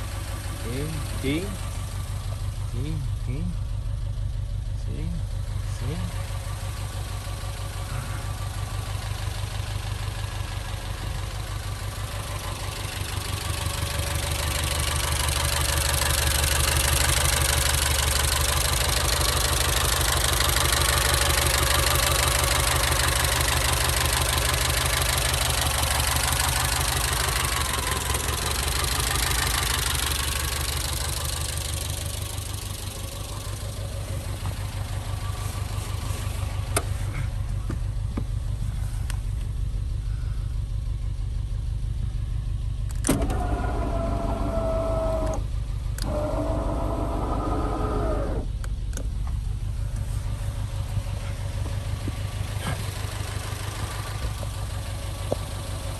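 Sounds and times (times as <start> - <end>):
car engine idling: 0.0 - 55.9.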